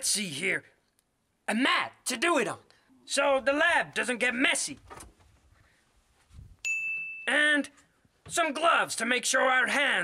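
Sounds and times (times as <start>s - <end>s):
bright ding chime: 6.6s - 7.4s.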